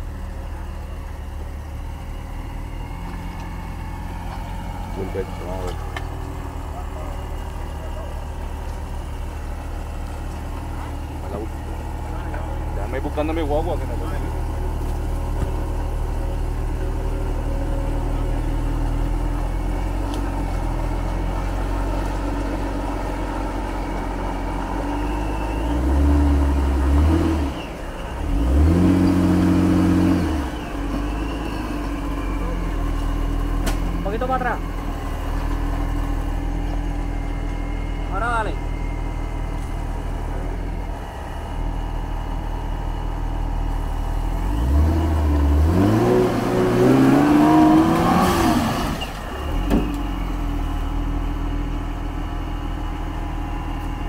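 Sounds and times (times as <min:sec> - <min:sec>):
engine labouring and revving: 0:00.0 - 0:54.0.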